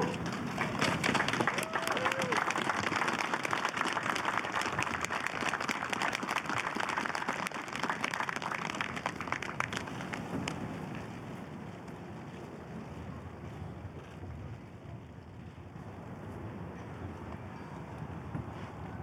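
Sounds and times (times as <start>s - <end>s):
wind noise on microphone: 0.0s - 19.0s
audience applause: 0.1s - 10.6s.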